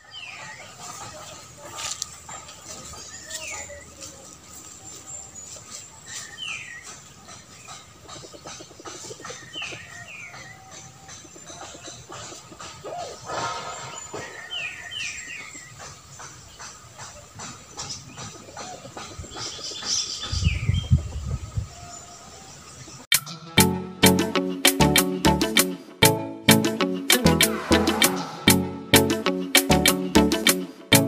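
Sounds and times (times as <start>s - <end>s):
falling bird chirps: 12.9s - 15.8s
low rumble: 27.3s - 29.0s.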